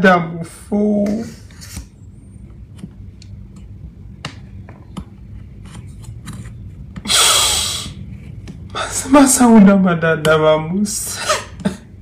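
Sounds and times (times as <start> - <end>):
man crying breath rush: 7.1 - 8.0.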